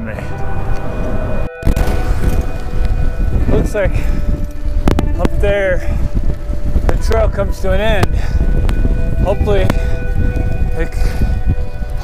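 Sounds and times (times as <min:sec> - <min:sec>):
loud low rumble: 0:00.0 - 0:07.0
wind buffeting microphone: 0:00.0 - 0:12.0.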